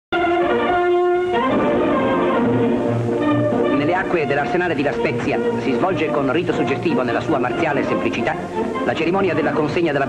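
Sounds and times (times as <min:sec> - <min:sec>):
orchestral music led by brass: 0:00.2 - 0:10.0.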